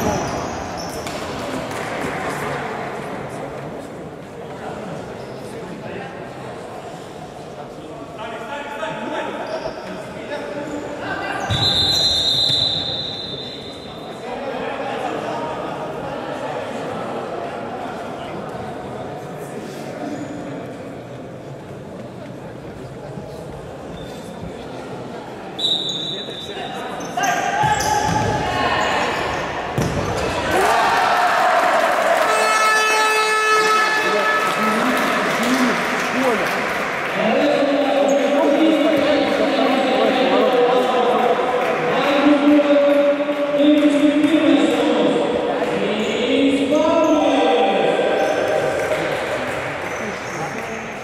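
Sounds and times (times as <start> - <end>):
people shouting in hall: 30.3 - 36.4.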